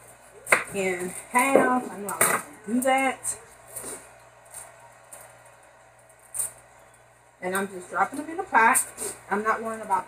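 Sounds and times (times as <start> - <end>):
low kitchen hum: 0.0 - 10.0.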